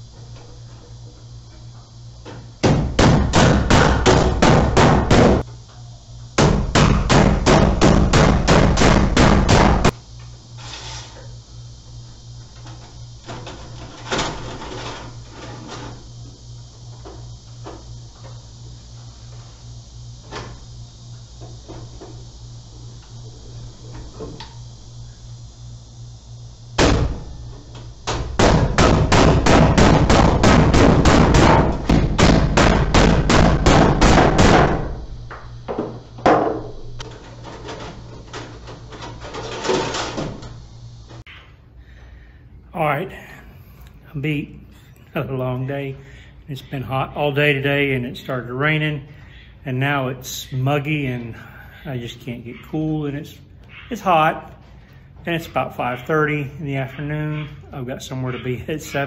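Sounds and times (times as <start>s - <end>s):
low steady hum: 0.0s - 59.0s
rapid hammer blows: 2.6s - 5.4s, 6.4s - 10.0s, 28.0s - 35.0s.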